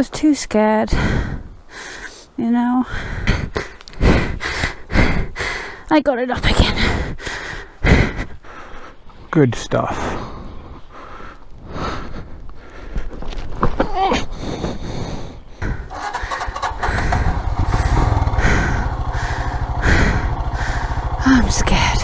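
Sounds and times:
motorcycle engine starting and idling: 15.7s - 22.0s.

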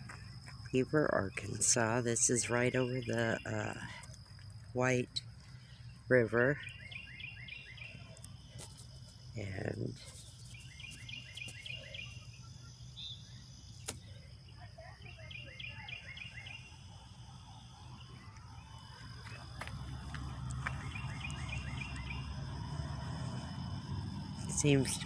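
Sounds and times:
outdoor background noise: 0.0s - 25.0s
songbird singing quick notes: 20.7s - 22.3s.

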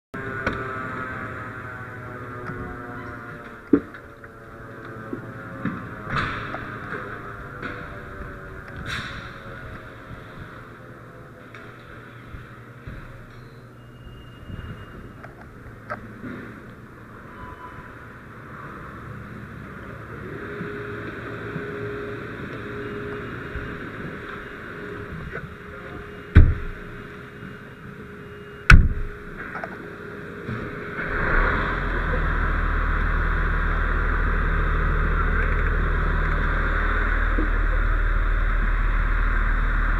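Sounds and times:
fire engine running: 0.2s - 39.9s
steady tone: 16.9s - 39.9s
cab doors banging shut: 26.3s - 27.0s, 28.7s - 29.2s.

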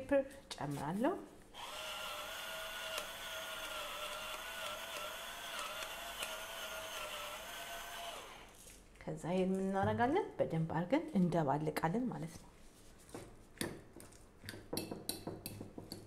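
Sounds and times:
electric pepper mill grinding: 1.6s - 8.7s.

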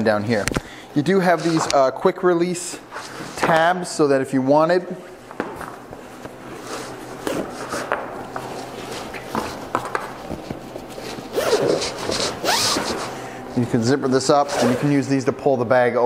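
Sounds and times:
fabric rustling and scraping: 5.8s - 13.2s.

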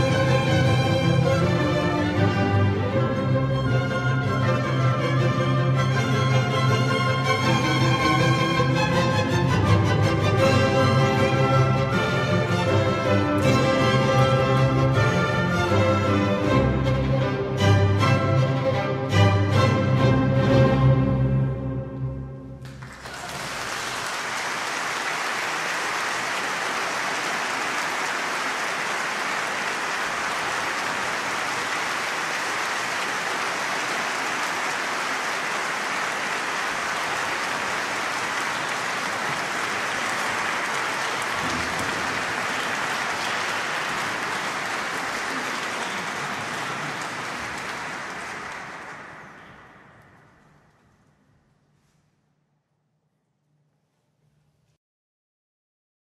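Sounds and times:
concert audience applauding: 0.0s - 16.3s, 22.6s - 50.8s.

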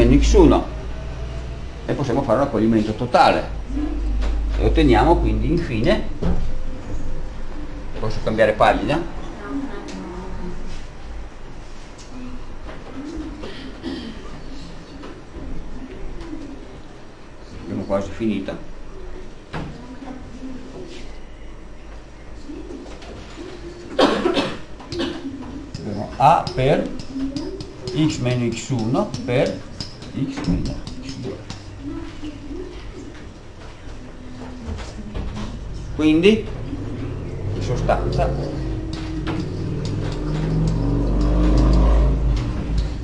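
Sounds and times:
vehicle engine rumble passing: 0.0s - 5.7s, 34.8s - 43.0s
faint low murmur: 0.0s - 43.0s.

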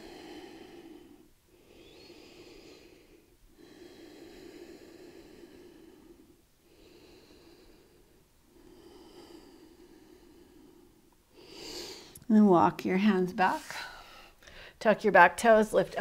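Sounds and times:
person breathing slowly: 0.0s - 12.2s, 13.7s - 14.8s.

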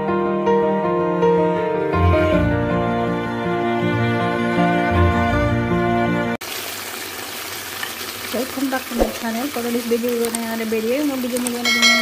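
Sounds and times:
music: 0.0s - 6.4s
chicken sizzling in frying pan: 6.4s - 12.0s.

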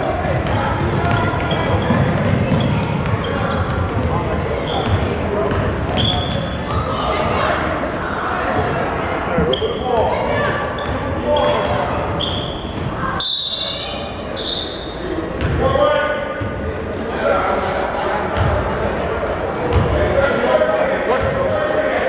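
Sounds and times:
sneakers squeaking: 0.3s - 16.9s, 17.6s - 20.1s.

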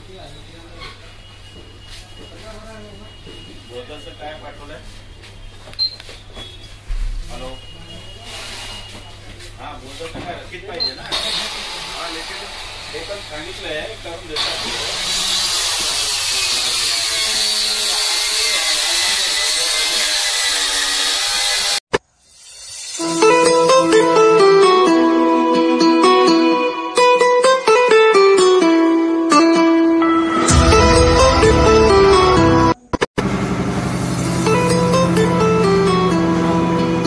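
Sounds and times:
ceiling fan whirring: 33.2s - 37.0s.

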